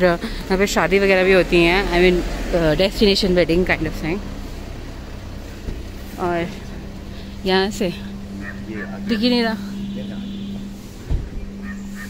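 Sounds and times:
car engine humming: 0:00.0 - 0:12.0
street noise: 0:00.0 - 0:12.0.

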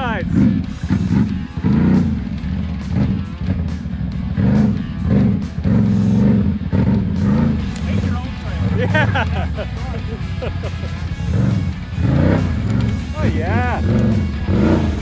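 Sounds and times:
atv engine revving: 0:00.0 - 0:15.0.

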